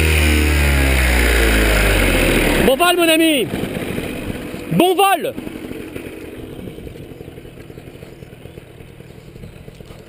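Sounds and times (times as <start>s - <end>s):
paramotor engine idling: 0.0s - 10.0s.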